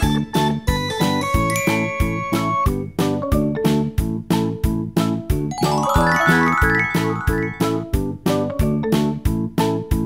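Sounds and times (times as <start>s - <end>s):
upbeat background music: 0.0s - 9.9s
tinkling chimes: 1.4s - 2.7s, 5.5s - 7.8s.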